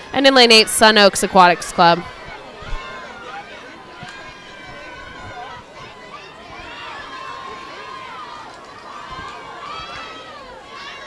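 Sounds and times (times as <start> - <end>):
distant crowd cheering: 0.0 - 11.0.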